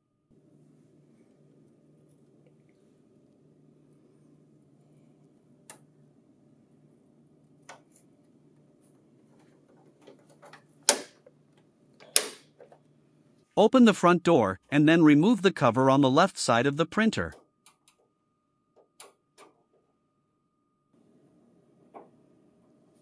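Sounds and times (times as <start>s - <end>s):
faint steady hum: 0.0s - 23.0s.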